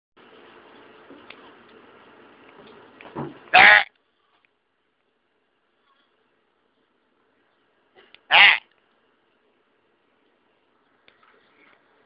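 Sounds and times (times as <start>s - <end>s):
goat bleating: 3.5s - 3.9s, 8.3s - 8.7s.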